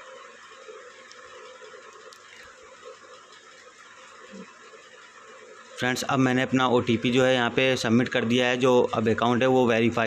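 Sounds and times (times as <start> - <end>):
low steady hiss: 0.0 - 10.0
faint ticks: 0.9 - 3.7.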